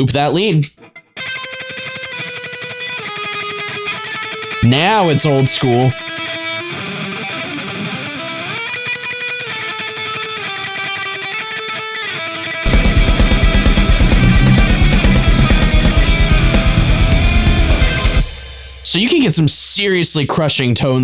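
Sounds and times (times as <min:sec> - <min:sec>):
distorted lead guitar: 0:00.7 - 0:19.4
heavy metal rhythm guitars: 0:00.8 - 0:19.5
drums: 0:12.6 - 0:20.0.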